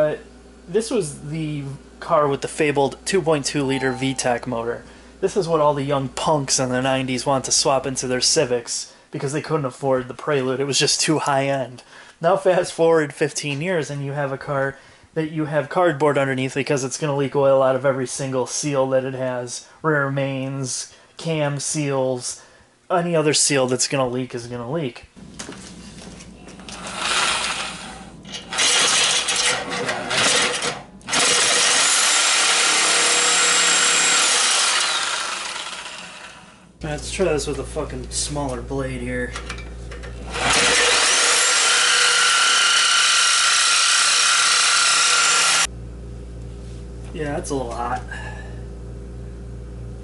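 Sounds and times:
low background hum: 0.0s - 31.7s, 35.1s - 41.4s, 45.0s - 50.0s
reciprocating saw cutting metal: 26.8s - 36.4s, 40.4s - 45.7s.

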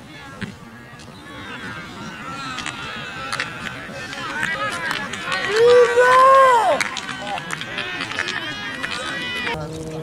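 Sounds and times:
voices shouting: 0.0s - 9.6s.

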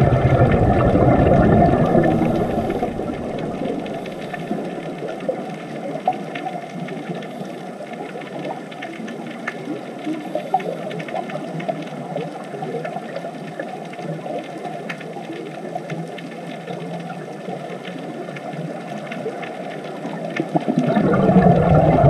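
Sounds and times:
underwater crackling hiss: 0.0s - 22.0s
small scattered clicks: 2.7s - 21.1s.

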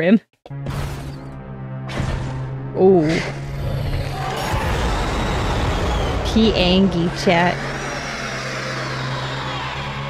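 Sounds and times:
low drone: 3.1s - 10.0s.

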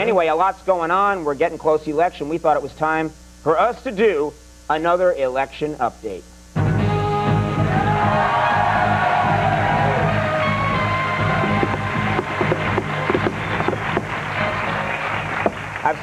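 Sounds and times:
tv theme music: 6.6s - 16.0s.

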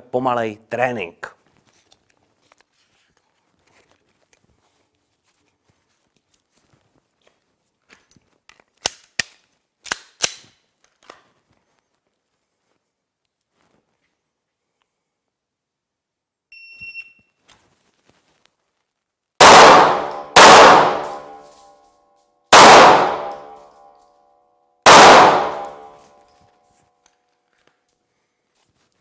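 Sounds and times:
pistol shots echoing indoors: 19.4s - 21.7s, 22.5s - 23.9s, 24.9s - 26.2s.

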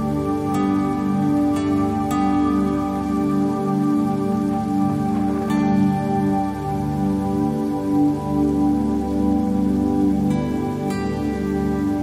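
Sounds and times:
slow meditation music chords: 0.0s - 12.0s
steady rain: 0.0s - 12.0s.

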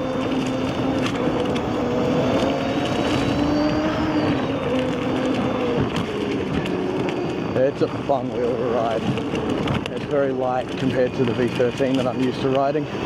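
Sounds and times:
electric motor hum: 0.0s - 13.0s.

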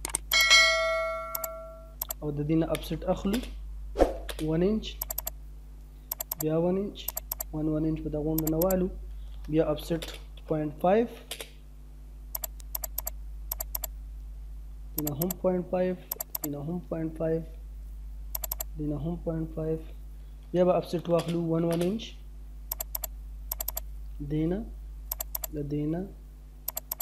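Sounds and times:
bright bell chime: 0.4s - 1.9s
short clicks: 1.3s - 3.6s, 4.3s - 5.4s, 6.1s - 6.5s, 7.1s - 7.5s, 8.4s - 8.8s, 12.3s - 13.9s, 15.0s - 15.4s, 16.1s - 16.6s, 18.3s - 18.7s, 22.7s - 23.9s, 25.1s - 25.6s, 26.7s - 27.0s.

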